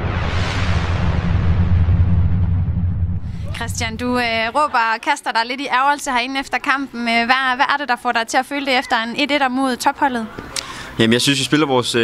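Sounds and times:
deep bass rumble: 0:00.0 - 0:04.6
hissing swell: 0:00.0 - 0:04.7.

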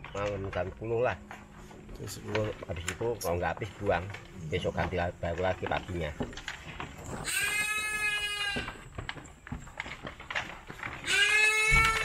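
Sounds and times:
goat bleating: 0:07.1 - 0:08.9, 0:11.0 - 0:12.0.

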